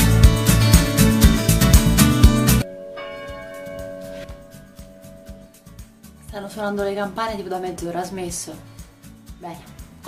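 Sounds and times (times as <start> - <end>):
upbeat background music: 0.0 - 2.6, 3.3 - 10.0
church bells ringing: 2.6 - 6.0.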